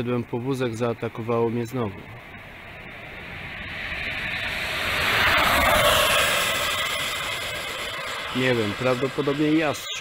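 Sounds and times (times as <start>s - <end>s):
vehicle passing by: 2.2s - 9.8s.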